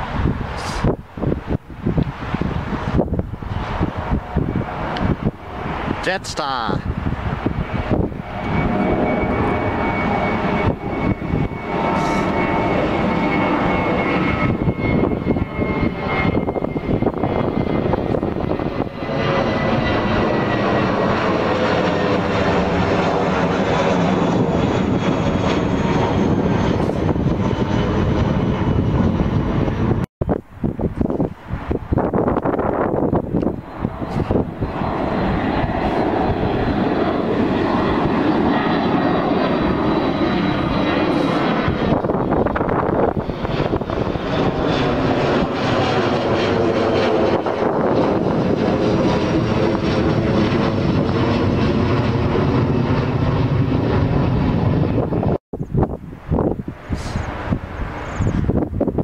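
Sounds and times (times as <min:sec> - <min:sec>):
jet engines roaring overhead: 0:00.0 - 0:59.0.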